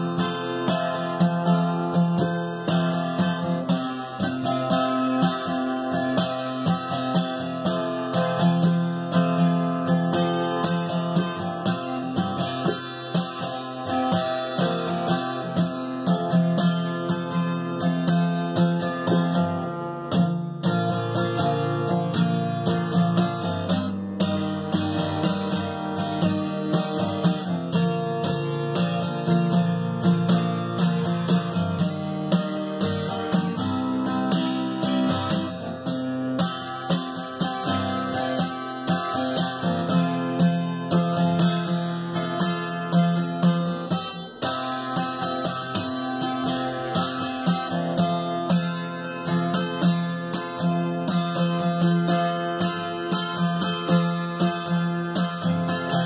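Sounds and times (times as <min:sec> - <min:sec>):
acoustic guitar picking: 0:00.0 - 0:56.0.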